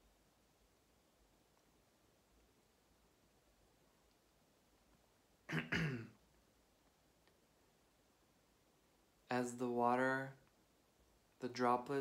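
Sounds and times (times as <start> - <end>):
man clearing his throat: 5.5 - 6.2.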